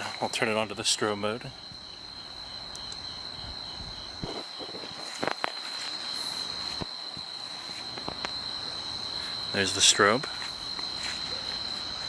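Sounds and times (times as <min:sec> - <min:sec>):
crickets trilling: 0:00.0 - 0:12.0
insect chirping: 0:00.0 - 0:12.0.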